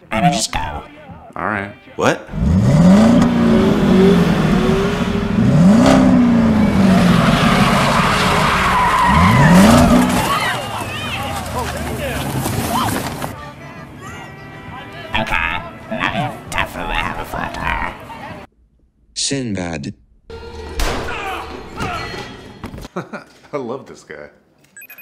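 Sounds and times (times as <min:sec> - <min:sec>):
car engine revving: 0:02.3 - 0:10.6
tyres squealing: 0:02.8 - 0:13.4.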